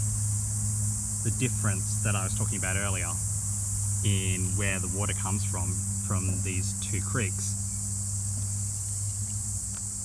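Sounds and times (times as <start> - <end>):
insects chirping: 0.0 - 10.0
low steady hum: 0.0 - 10.0.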